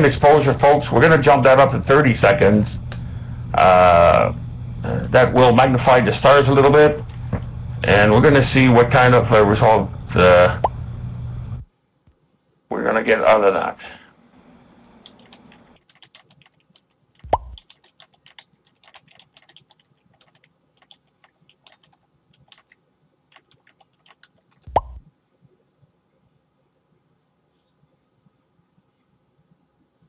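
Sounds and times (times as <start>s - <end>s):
computer keys typing: 15.0s - 25.2s.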